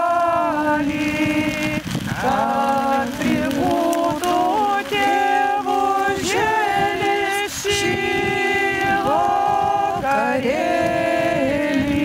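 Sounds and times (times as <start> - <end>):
voices singing a chant: 0.0 - 12.0.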